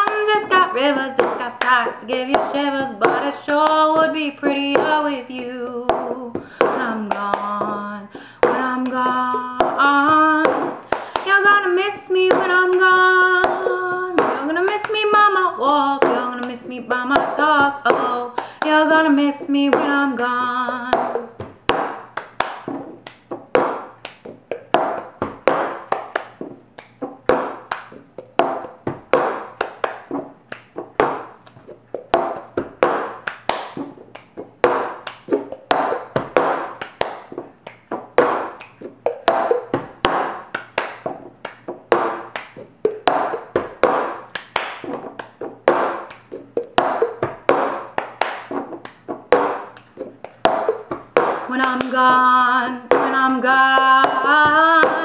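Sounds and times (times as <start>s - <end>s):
hands clapping: 0.0s - 3.8s, 10.4s - 11.4s, 20.9s - 52.2s
palms tapping tabletop: 0.0s - 4.1s, 5.9s - 7.8s, 8.4s - 11.4s, 12.2s - 15.4s, 16.0s - 20.1s, 20.8s - 52.2s, 52.8s - 55.0s
plastic cup struck on table: 34.6s - 37.2s, 38.2s - 41.1s.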